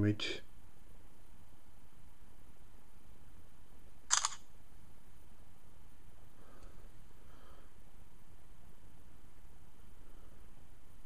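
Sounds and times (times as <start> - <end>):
camera shutter double click: 4.1 - 4.5.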